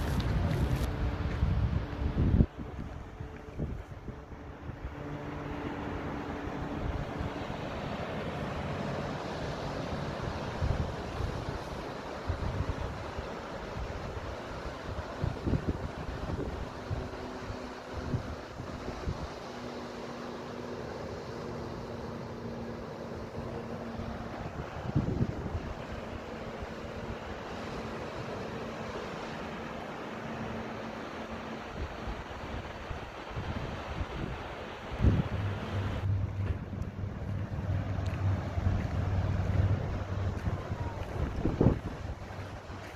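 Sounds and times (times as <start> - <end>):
wind buffeting microphone: 0.0 - 7.5, 10.0 - 19.6, 23.3 - 27.9, 31.7 - 42.9
faint steady hum: 0.0 - 42.9
ocean surf breaking: 0.0 - 42.9.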